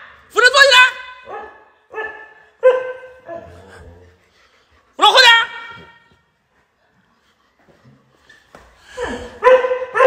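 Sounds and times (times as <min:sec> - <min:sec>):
dog barking high-pitched: 0:00.9 - 0:03.5, 0:09.2 - 0:10.0.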